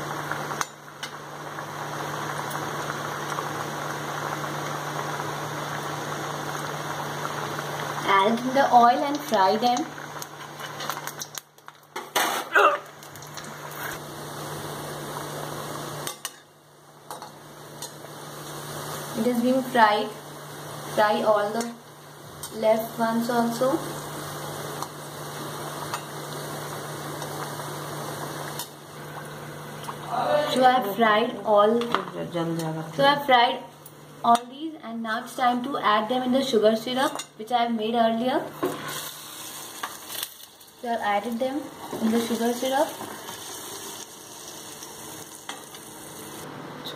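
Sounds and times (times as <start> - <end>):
dough frying in oil: 0.0 - 34.5, 35.2 - 46.9.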